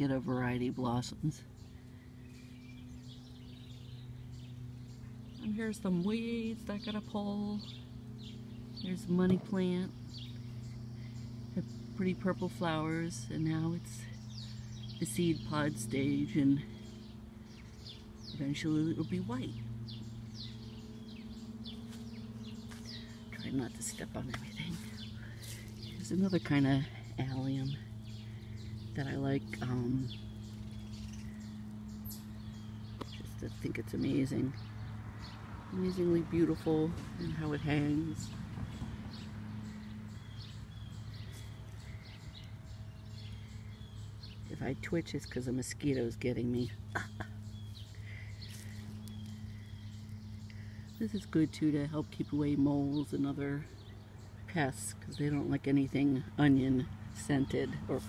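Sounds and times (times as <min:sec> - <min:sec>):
birds chirping: 0:00.0 - 0:58.0
low hum: 0:00.0 - 0:58.0.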